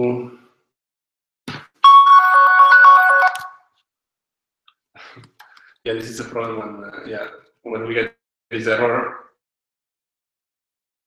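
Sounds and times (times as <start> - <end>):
phone ringtone melody: 1.8 - 3.7.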